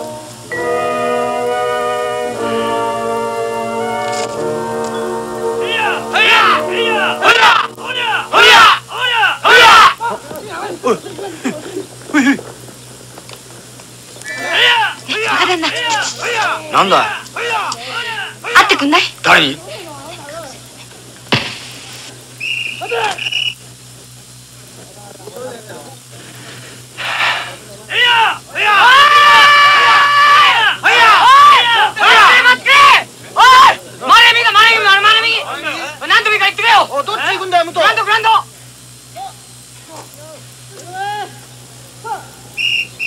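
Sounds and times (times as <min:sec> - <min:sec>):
high-pitched whistle blast: 0:00.0 - 0:07.7, 0:22.4 - 0:23.6, 0:42.6 - 0:43.0
steady high tone: 0:00.0 - 0:09.5
low hum: 0:00.0 - 0:28.6
faint voices: 0:02.3 - 0:42.6
sharp knock: 0:21.3 - 0:21.6.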